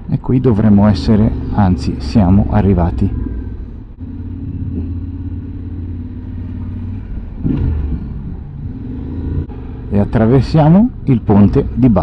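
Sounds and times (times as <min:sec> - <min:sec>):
motorcycle engine rumbling: 0:00.0 - 0:12.0.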